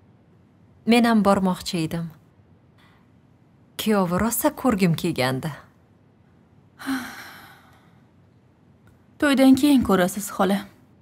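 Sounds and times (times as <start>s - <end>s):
woman sighing: 6.8s - 7.9s.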